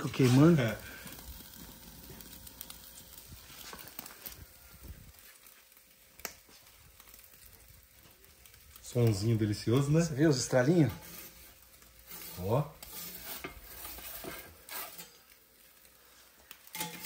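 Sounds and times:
sizzling with sharp crackles: 0:00.0 - 0:17.0.

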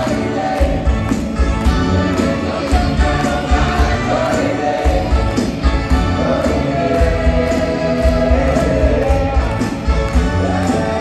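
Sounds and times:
live rock band: 0:00.0 - 0:11.0
steady drum beat: 0:00.0 - 0:11.0.

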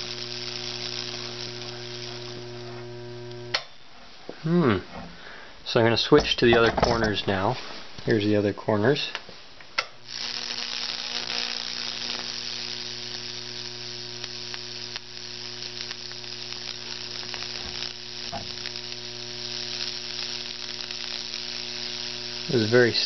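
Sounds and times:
electric arc sizzling and crackling: 0:00.0 - 0:03.7, 0:09.8 - 0:23.0
transformer mains hum: 0:00.0 - 0:05.1, 0:09.2 - 0:23.0.

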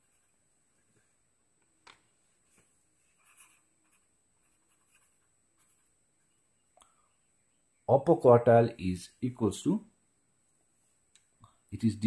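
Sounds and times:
pen scratching on paper: 0:00.0 - 0:00.4, 0:02.9 - 0:06.0.

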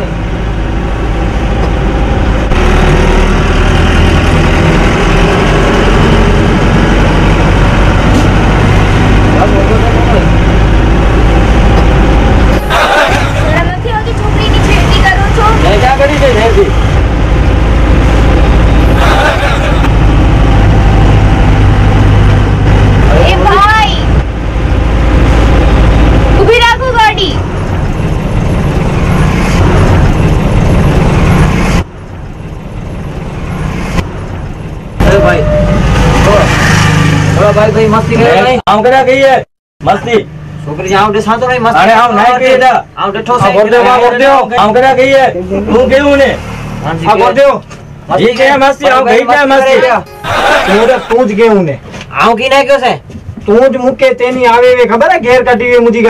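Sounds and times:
bus engine low drone: 0:00.0 - 0:39.2, 0:39.8 - 0:52.3
voice in long gliding notes: 0:50.1 - 0:51.1.

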